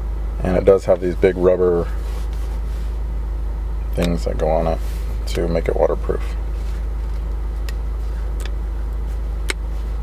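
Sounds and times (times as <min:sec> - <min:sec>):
low rumble inside car: 0:00.0 - 0:10.0.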